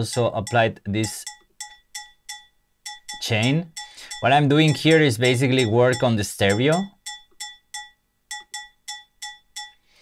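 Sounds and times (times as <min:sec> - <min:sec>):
cowbell loop: 0:00.0 - 0:09.8.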